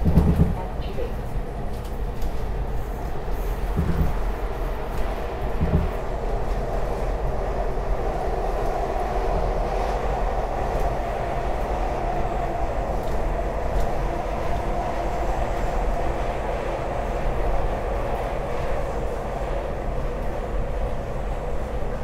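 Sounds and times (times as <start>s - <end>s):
train wheels rumbling on rail: 0.0s - 22.0s.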